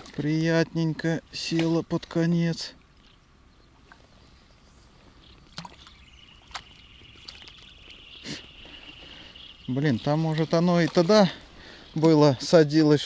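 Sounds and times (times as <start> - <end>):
fish splashing at water surface: 5.5 - 8.8.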